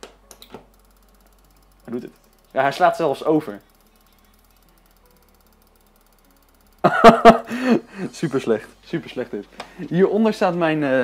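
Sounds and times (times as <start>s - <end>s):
strobe light ticking: 0.0s - 10.9s.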